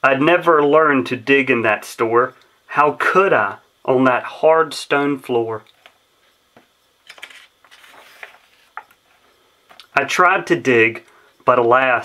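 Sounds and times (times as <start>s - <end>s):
book page rustling: 7.0s - 9.0s.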